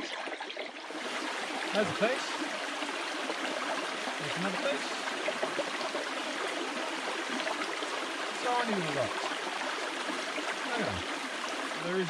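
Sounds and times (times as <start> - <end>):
creek water running over rocks: 0.0 - 12.0.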